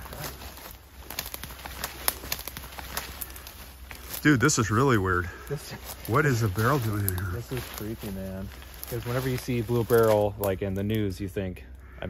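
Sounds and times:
twig snapping: 0.0 - 4.3, 5.8 - 11.0
footsteps crackling dry leaves: 0.0 - 12.0.

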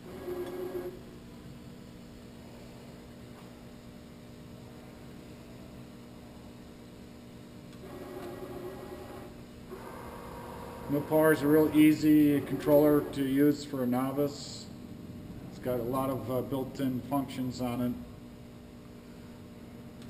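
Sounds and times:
milling machine hum: 0.0 - 6.7, 7.7 - 20.0
machine axis whine: 7.8 - 13.6.

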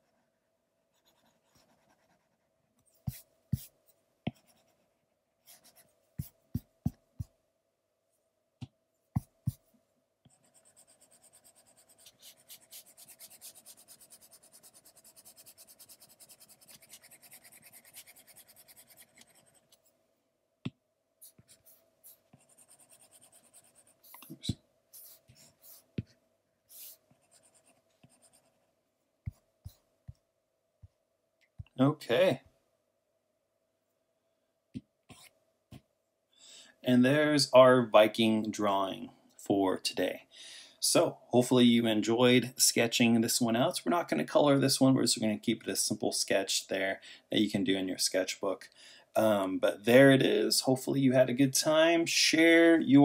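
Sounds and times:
stylus scratching on glass screen: 10.3 - 19.8, 21.2 - 25.9.

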